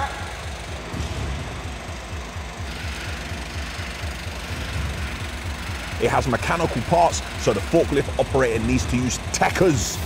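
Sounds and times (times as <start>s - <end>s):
diesel truck engine throbbing: 0.0s - 10.0s.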